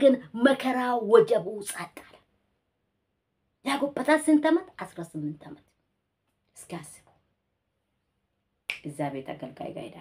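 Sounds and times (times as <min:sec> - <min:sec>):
woman speaking: 0:00.0 - 0:02.3, 0:03.6 - 0:05.7, 0:06.5 - 0:07.2, 0:08.7 - 0:10.0.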